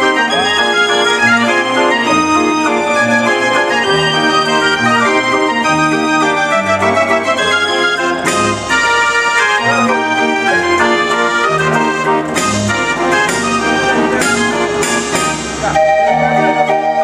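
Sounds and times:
street organ playing a tune: 0:00.0 - 0:17.0.

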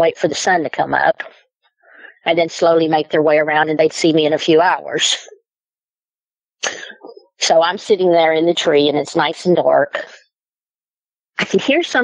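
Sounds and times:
woman speaking: 0:00.0 - 0:01.4, 0:02.1 - 0:05.4, 0:06.6 - 0:10.2, 0:11.4 - 0:12.0
sharp breath: 0:01.8 - 0:02.2.

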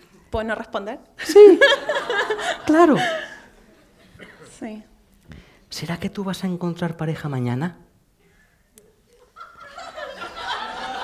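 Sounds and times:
audience laughter: 0:01.4 - 0:04.1, 0:09.2 - 0:11.0.

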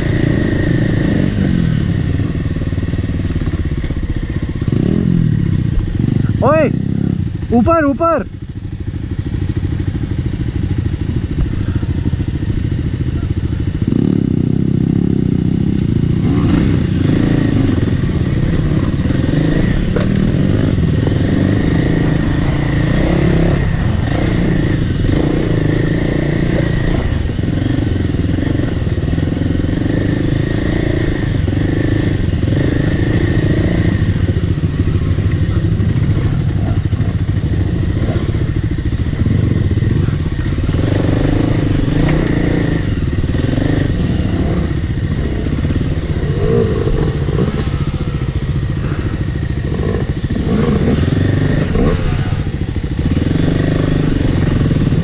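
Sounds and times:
knocks and clatter over rocks: 0:19.8 - 0:20.3.

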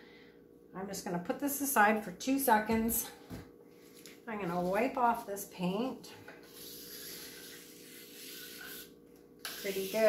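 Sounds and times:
hand rubbing paint on board: 0:06.4 - 0:08.9, 0:09.5 - 0:10.0.

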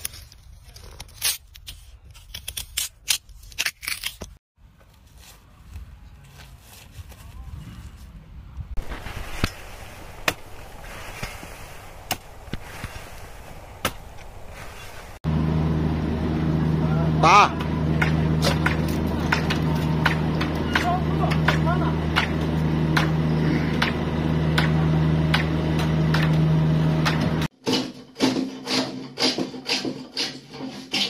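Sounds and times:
low engine hum: 0:07.2 - 0:27.5.

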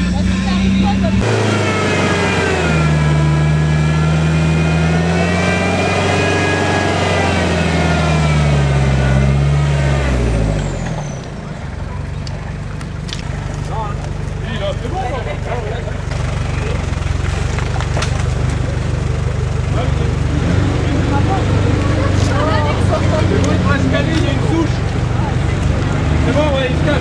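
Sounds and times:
off-road engine revving in mud: 0:00.0 - 0:27.0.

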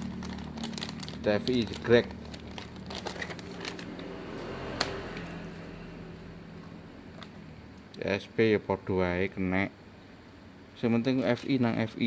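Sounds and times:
plastic bag rustling: 0:00.0 - 0:04.2.

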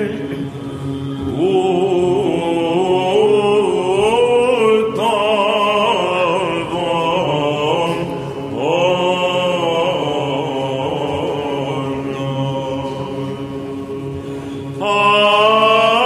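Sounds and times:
low sung drone: 0:00.0 - 0:16.0.

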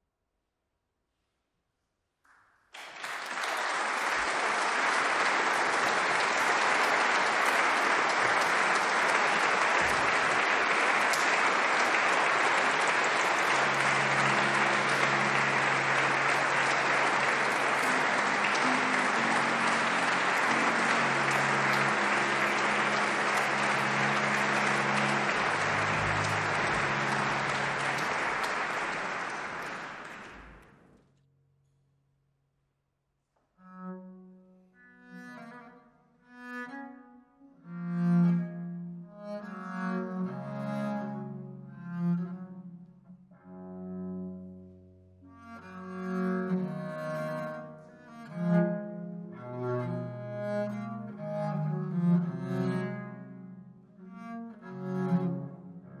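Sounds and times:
audience applauding: 0:02.3 - 0:30.9
faint low held instrument notes: 0:12.9 - 0:29.4.

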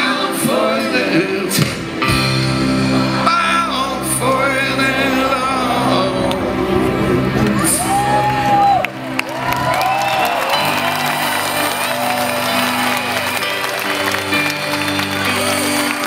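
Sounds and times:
live band music over loudspeakers: 0:00.0 - 0:16.0
audience clapping along: 0:07.4 - 0:16.0.

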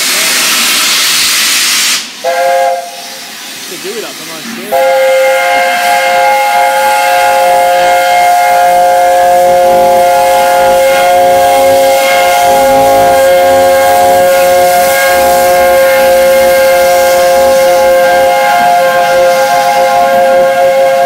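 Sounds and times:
steam hissing: 0:00.0 - 0:21.0
steam locomotive chime whistle: 0:00.3 - 0:03.1, 0:04.7 - 0:21.0.

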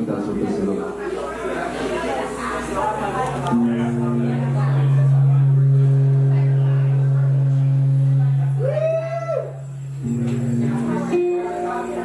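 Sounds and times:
solo acoustic song: 0:02.5 - 0:12.0.

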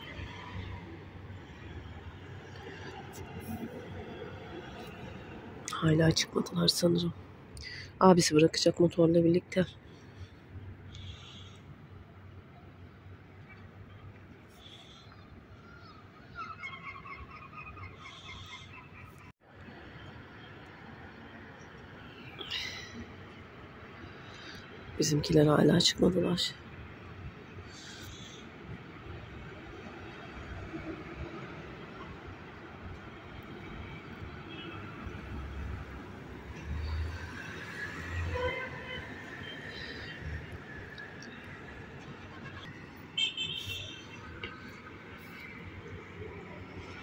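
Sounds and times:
low outdoor background: 0:00.0 - 0:47.0.

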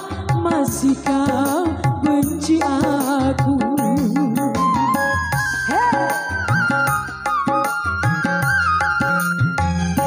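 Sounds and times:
electronic keyboard music over speakers: 0:03.6 - 0:10.0.

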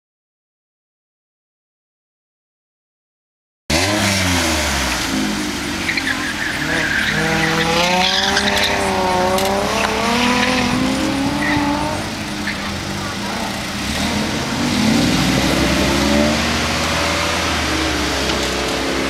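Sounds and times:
car engine revving: 0:03.7 - 0:19.0.

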